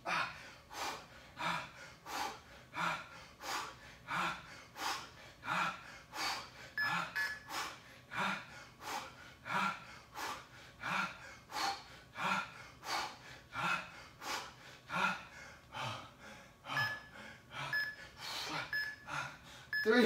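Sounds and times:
man breathing hard: 0:00.0 - 0:19.8.

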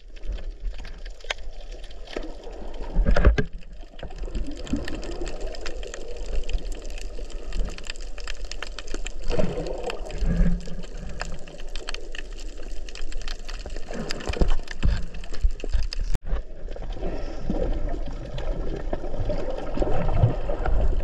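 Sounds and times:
crackling clicks underwater: 0:00.0 - 0:21.0
underwater water movement: 0:00.0 - 0:21.0.

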